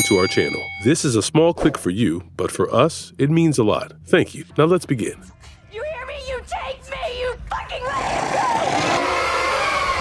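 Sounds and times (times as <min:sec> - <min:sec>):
woman screaming: 0:07.6 - 0:10.0.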